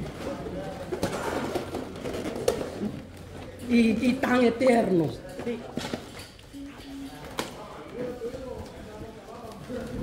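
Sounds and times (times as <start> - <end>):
faint murmur of people: 0.0 - 10.0.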